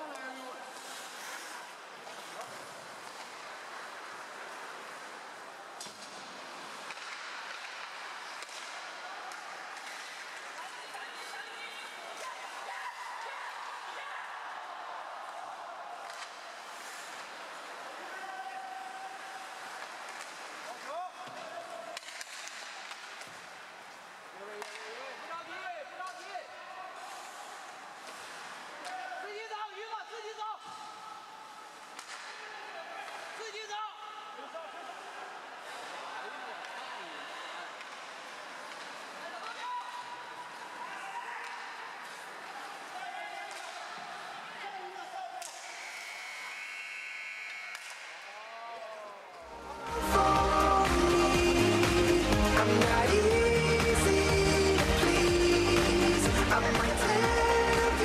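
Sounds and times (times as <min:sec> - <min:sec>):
hockey sticks and puck clacking: 0:00.0 - 0:13.9, 0:15.2 - 0:26.3, 0:27.0 - 0:29.2, 0:30.6 - 0:33.4, 0:37.7 - 0:46.6, 0:47.4 - 0:48.4
voices of players and spectators: 0:00.0 - 0:58.0.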